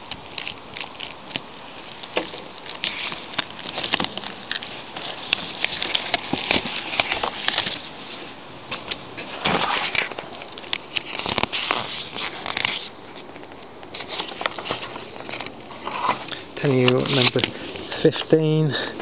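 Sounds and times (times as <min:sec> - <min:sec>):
paper and plastic rustling: 0:00.0 - 0:19.0.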